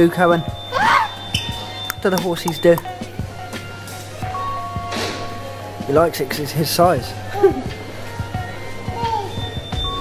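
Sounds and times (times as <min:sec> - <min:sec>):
background music with short notes: 0:01.4 - 0:03.9.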